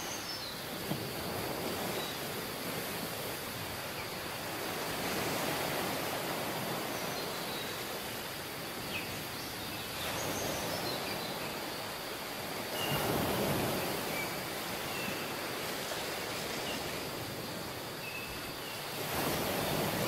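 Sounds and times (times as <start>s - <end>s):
ocean surf washing up a beach: 0.0s - 20.0s.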